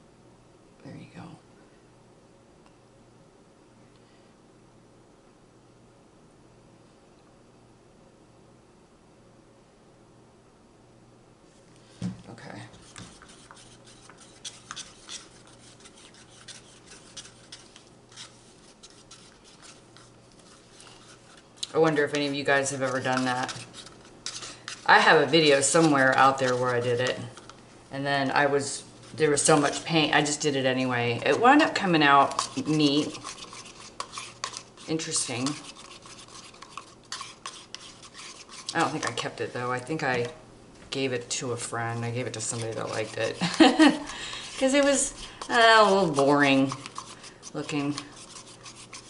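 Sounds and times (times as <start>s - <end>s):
stick stirring paint in paper cup: 12.2s - 49.0s.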